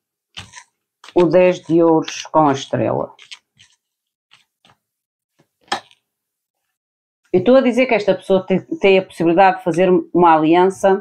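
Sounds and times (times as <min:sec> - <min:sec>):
cards clicking and snapping: 0:03.2 - 0:03.8.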